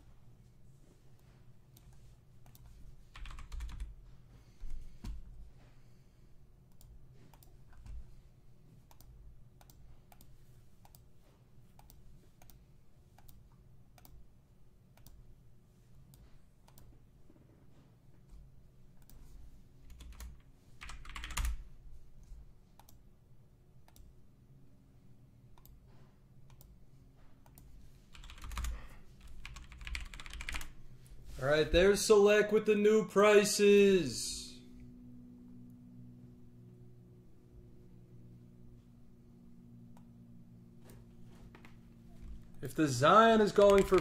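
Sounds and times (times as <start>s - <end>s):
keyboard keys clicking: 2.4s - 3.9s, 19.9s - 21.6s, 27.4s - 30.7s, 43.5s - 44.0s.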